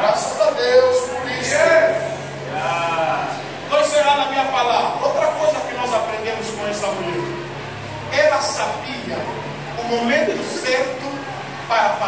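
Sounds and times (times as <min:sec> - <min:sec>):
man preaching: 0:00.0 - 0:07.3, 0:08.1 - 0:12.0.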